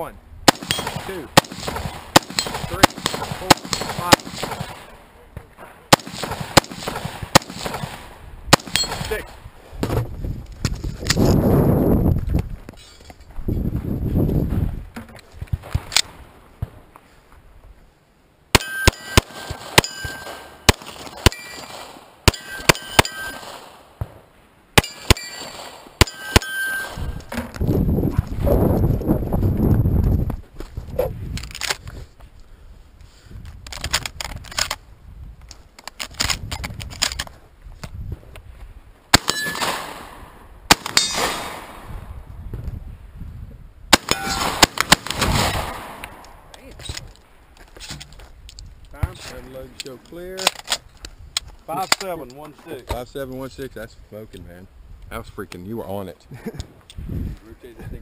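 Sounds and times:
pistol shots: 0.5s - 4.9s, 5.9s - 9.2s, 18.5s - 24.2s, 24.8s - 27.2s, 39.1s - 41.9s, 43.9s - 46.2s
rifle gunshots: 0.5s - 4.9s, 5.9s - 9.3s, 18.5s - 24.2s, 24.8s - 27.2s, 39.1s - 41.9s, 43.9s - 46.2s
rumbling movement noise: 8.8s - 18.0s, 27.0s - 39.0s
steel targets clanging: 18.6s - 23.6s, 24.8s - 27.3s, 40.9s - 41.5s, 44.0s - 44.6s.

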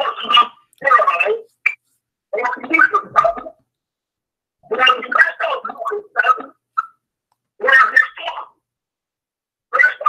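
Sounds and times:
garbled voice over bad call: 0.0s - 1.5s, 2.3s - 3.6s, 4.6s - 6.6s, 7.6s - 8.6s, 9.7s - 10.0s.

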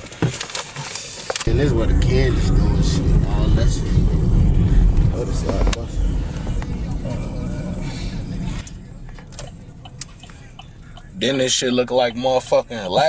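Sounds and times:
car road and engine rumble: 0.1s - 13.0s
voices: 1.4s - 13.0s.

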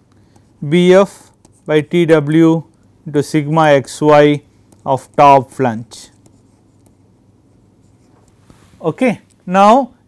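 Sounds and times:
stylus scratching and tapping screen: 0.1s - 2.9s, 3.6s - 9.4s
man speaking: 0.6s - 6.2s, 8.8s - 10.0s.

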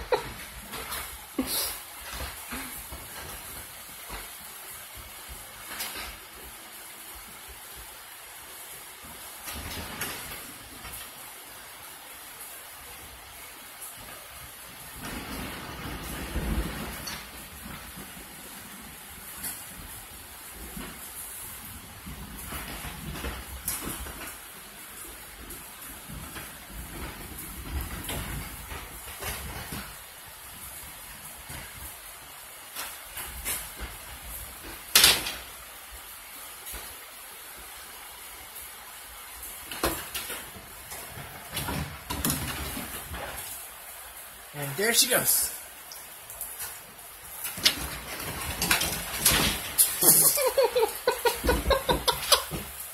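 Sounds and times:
dogs scuffling on wooden deck: 0.0s - 11.3s, 12.7s - 44.4s, 46.3s - 52.9s
rain hissing: 0.0s - 52.9s.

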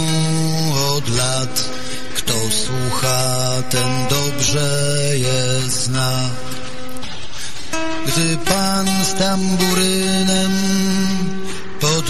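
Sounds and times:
man singing long held notes: 0.0s - 12.0s
song accompaniment: 0.0s - 12.0s.

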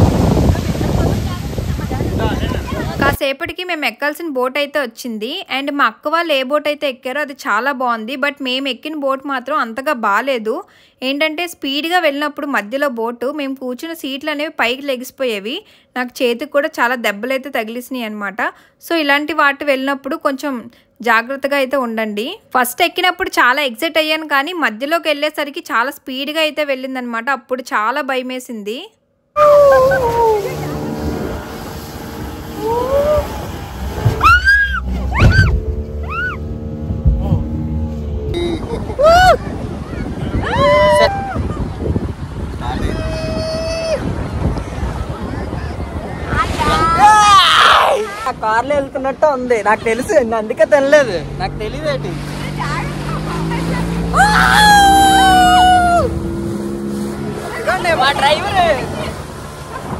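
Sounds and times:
speedboat engine running: 0.0s - 3.2s, 29.4s - 46.3s, 48.2s - 59.9s
water and wind noise: 0.0s - 3.2s, 29.4s - 59.9s
person yelling: 29.4s - 30.9s, 32.6s - 33.4s, 39.0s - 39.4s, 40.3s - 41.5s, 42.7s - 44.1s, 46.6s - 48.2s, 54.1s - 56.2s
passengers whooping: 29.4s - 31.0s, 32.5s - 36.5s, 37.7s - 41.8s, 42.6s - 44.3s, 46.3s - 48.3s, 54.0s - 56.3s.

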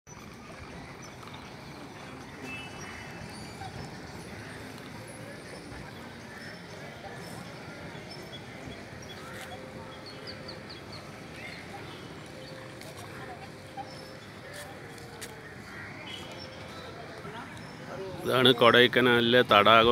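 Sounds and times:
distant voices: 0.1s - 19.9s.

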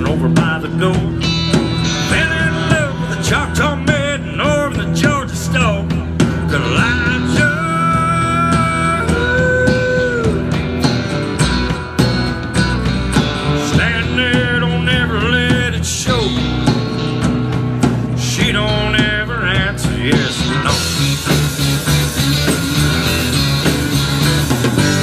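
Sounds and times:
bass: 0.0s - 25.0s
drums: 0.0s - 25.0s
lead guitar with bent notes: 0.0s - 25.0s
strummed acoustic guitar: 0.0s - 25.0s.

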